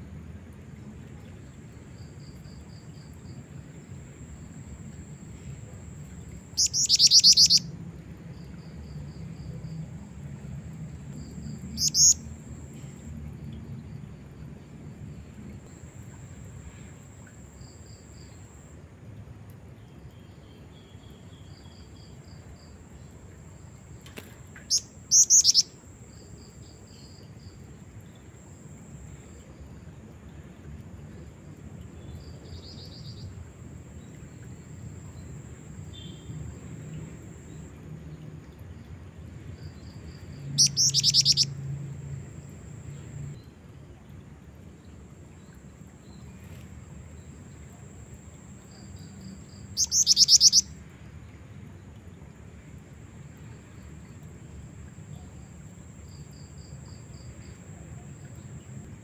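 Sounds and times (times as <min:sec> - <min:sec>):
bird chirping: 0:06.5 - 0:07.7, 0:11.5 - 0:12.3, 0:24.6 - 0:25.7, 0:40.1 - 0:41.6, 0:48.7 - 0:50.7
sharp high-pitched bird call: 0:06.6 - 0:07.6, 0:11.8 - 0:12.2, 0:24.7 - 0:25.7, 0:40.6 - 0:41.5, 0:49.8 - 0:50.7.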